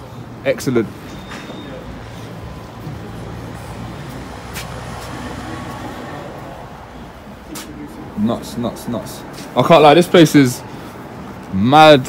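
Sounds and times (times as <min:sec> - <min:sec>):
street traffic: 0:00.0 - 0:12.0.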